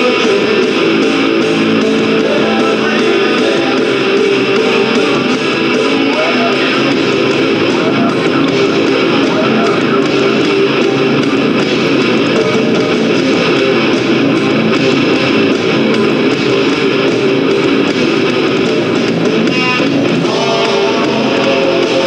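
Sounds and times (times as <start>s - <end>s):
metal band music: 0.0s - 22.0s.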